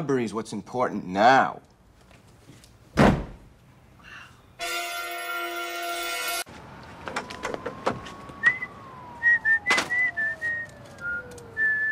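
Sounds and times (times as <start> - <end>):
whistled tune: 8.4 - 11.9.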